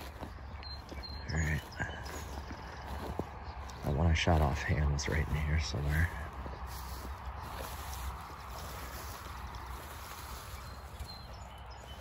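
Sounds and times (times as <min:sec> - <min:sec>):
walking through grass rustle: 0:00.0 - 0:12.0.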